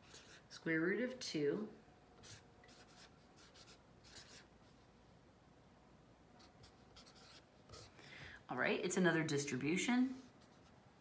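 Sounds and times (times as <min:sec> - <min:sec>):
marker scratching on paper: 0:00.0 - 0:00.6, 0:02.2 - 0:04.8, 0:06.4 - 0:07.9.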